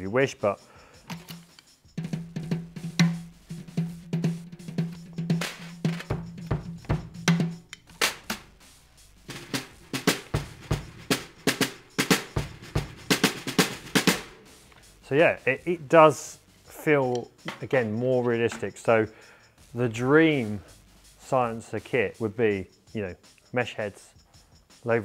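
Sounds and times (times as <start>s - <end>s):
drum kit fast groove: 0.0s - 25.0s
low drum tone ringing: 2.0s - 19.1s.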